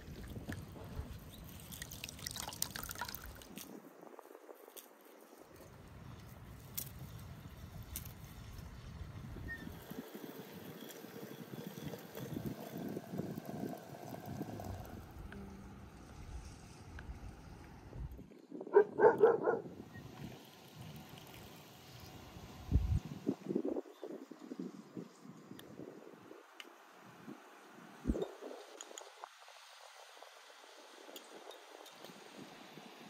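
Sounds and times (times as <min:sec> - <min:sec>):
tea pouring into glasses: 0:01.5 - 0:03.6, 0:20.3 - 0:22.2.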